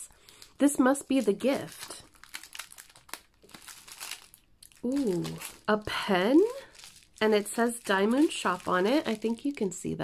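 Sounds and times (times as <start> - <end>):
plastic packaging crinkling: 0.0 - 10.0.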